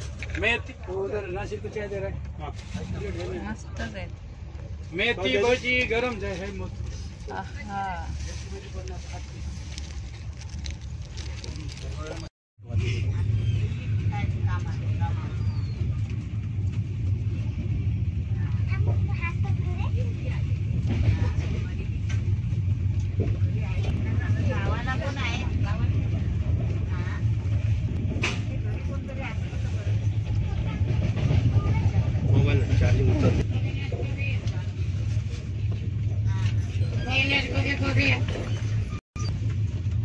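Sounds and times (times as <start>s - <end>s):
train wheels rumbling on rails: 0.0s - 40.0s
people talking: 28.4s - 35.4s.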